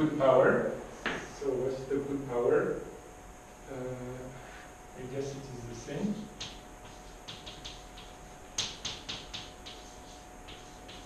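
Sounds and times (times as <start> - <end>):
chalk tapping and scratching: 6.1 - 11.0.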